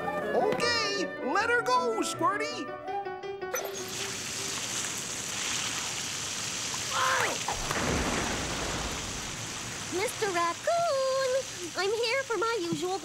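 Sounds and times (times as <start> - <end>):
fire hose gushing water: 3.6 - 13.0.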